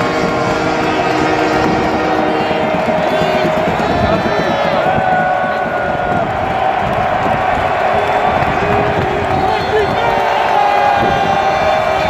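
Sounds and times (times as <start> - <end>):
stadium crowd shouting and cheering: 0.0 - 12.0.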